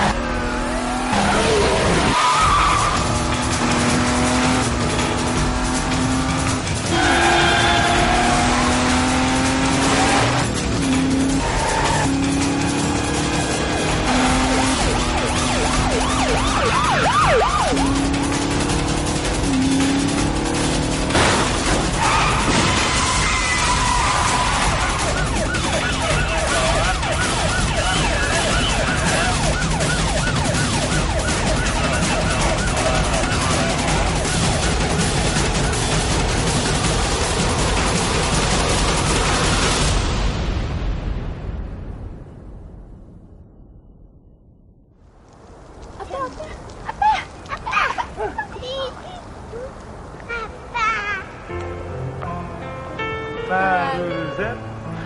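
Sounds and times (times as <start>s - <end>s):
car engines: 0.0s - 40.0s, 45.2s - 55.0s
dramatic background music: 0.0s - 42.4s
tyres squealing and skidding: 0.6s - 3.9s, 6.9s - 9.5s, 11.0s - 12.9s, 21.6s - 29.7s.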